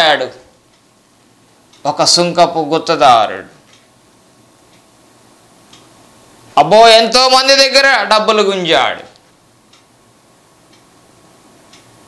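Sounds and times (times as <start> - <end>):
faint ticking: 0.6 - 6.5, 9.0 - 12.0.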